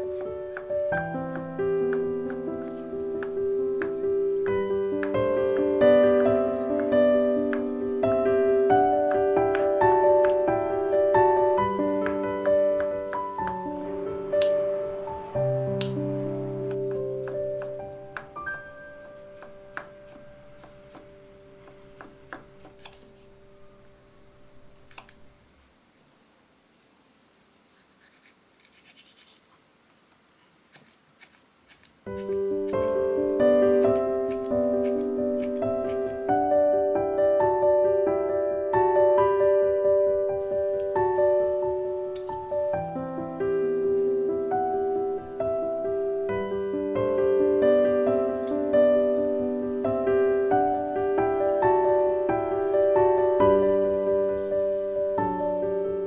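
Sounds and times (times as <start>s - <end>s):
piano music: 0.0s - 24.9s, 32.1s - 56.0s.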